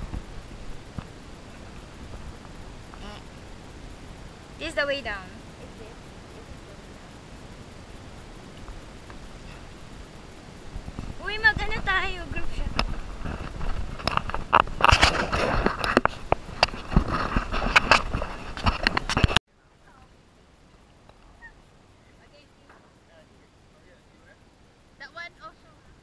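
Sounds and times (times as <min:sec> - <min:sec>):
wind rumbling on microphone: 0:00.0 - 0:19.4
person's drawn-out call: 0:03.0 - 0:03.2.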